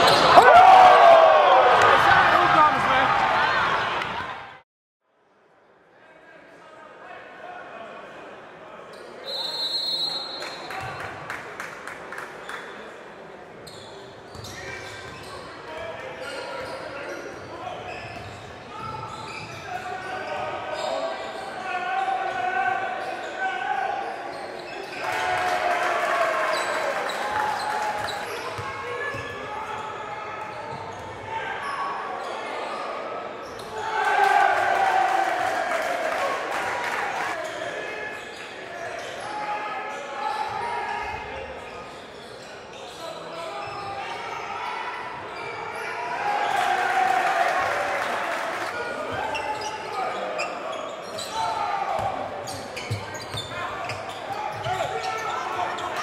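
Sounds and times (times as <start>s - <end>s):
echoing voices in hall: 5.8s - 56.0s.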